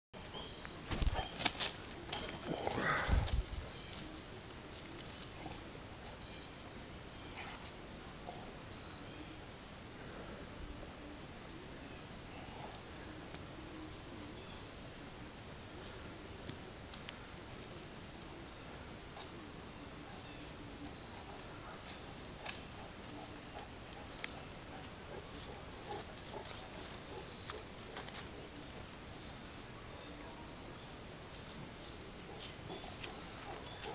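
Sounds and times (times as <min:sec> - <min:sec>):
high insect drone: 0:00.2 - 0:33.9
insect chirps: 0:00.2 - 0:33.9
dog growling: 0:02.5 - 0:03.3.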